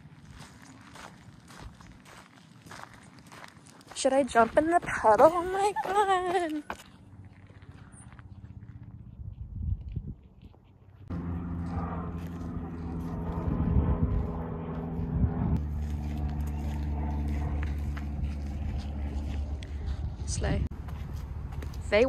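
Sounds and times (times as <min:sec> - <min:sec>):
propeller airplane engine droning: 0:10.7 - 0:22.0.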